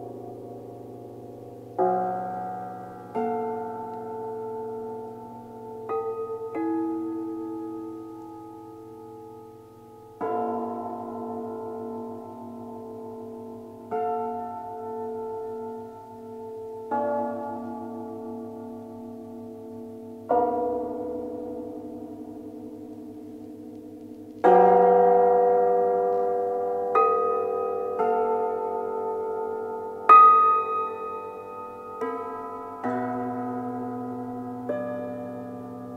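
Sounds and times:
cimbalom chords ringing: 0.0s - 35.9s.

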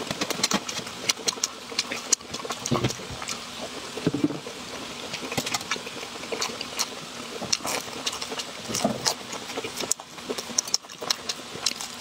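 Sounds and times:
crunchy chewing of food: 0.0s - 12.0s.

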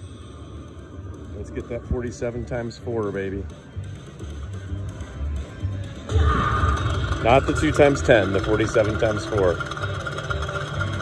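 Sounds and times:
slot machine music pulsing beat: 1.1s - 11.0s.

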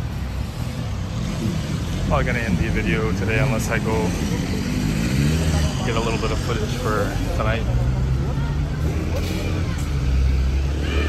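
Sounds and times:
steady traffic rumble: 0.0s - 11.0s
vehicle engine passing: 0.3s - 11.0s.

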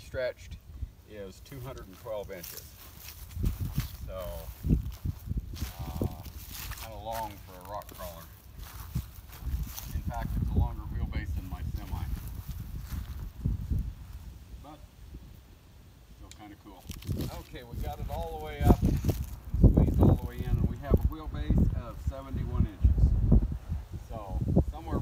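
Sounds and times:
wind gusts on microphone: 2.4s - 15.5s, 16.8s - 25.0s.

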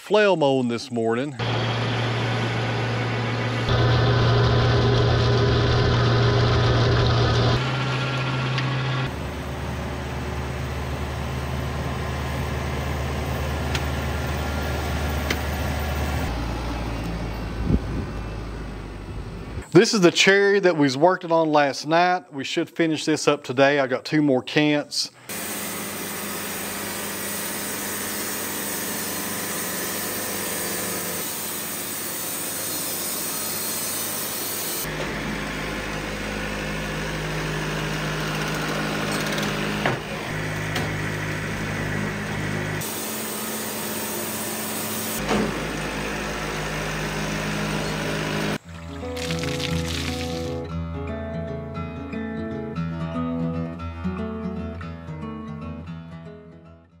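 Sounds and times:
band sawmill sawing wood: 1.4s - 9.2s, 25.3s - 50.6s
music: 48.7s - 57.0s.

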